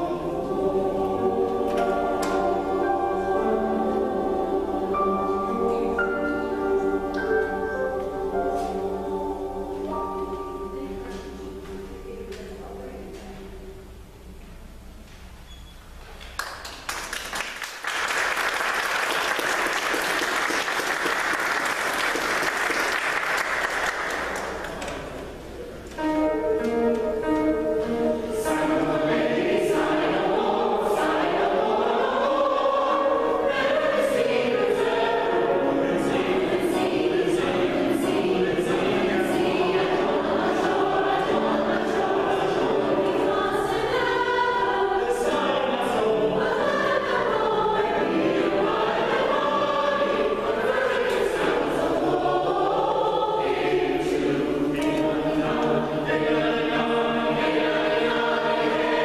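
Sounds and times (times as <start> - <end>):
mixed choir singing: 0.0 - 12.3, 26.0 - 59.0
piano accompaniment: 0.0 - 12.8, 24.1 - 59.0.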